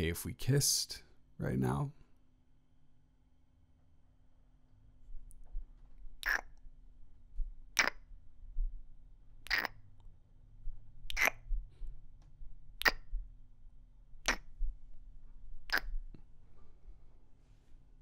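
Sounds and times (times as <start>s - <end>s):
lip smacks of kissing: 6.2s - 6.6s, 7.8s - 8.0s, 9.5s - 9.8s, 11.1s - 11.4s, 12.8s - 13.1s, 14.3s - 14.5s, 15.7s - 16.0s.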